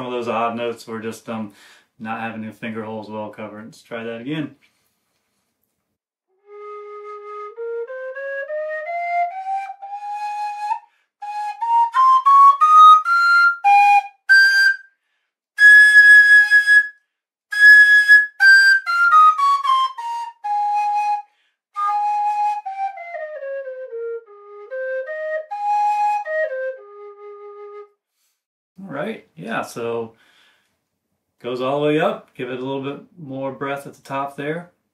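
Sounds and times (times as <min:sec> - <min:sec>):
tin whistle playing a scale: 0:06.4 - 0:14.9, 0:15.6 - 0:27.9.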